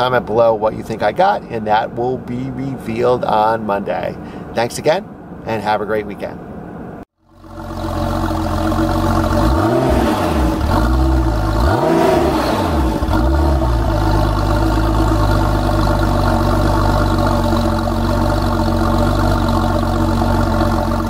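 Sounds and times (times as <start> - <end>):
car engine idling: 7.2 - 21.0
car engine revving: 7.3 - 21.0.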